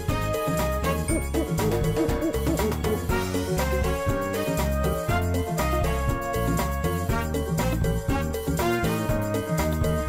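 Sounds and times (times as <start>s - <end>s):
music with bass and beat: 0.0s - 10.0s
bell-like notes: 1.0s - 3.6s.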